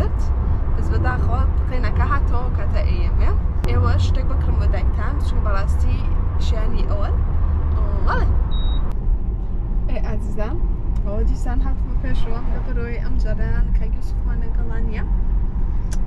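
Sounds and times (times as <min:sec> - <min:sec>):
people talking: 0:00.0 - 0:07.2, 0:07.8 - 0:08.3, 0:09.9 - 0:15.1
road rumble inside car: 0:00.0 - 0:16.0
short high beep: 0:08.5 - 0:08.9.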